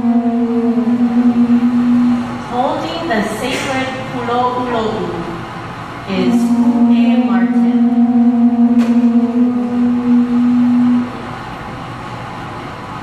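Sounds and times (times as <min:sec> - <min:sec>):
conch shells blowing: 0:00.0 - 0:02.7, 0:06.1 - 0:11.5.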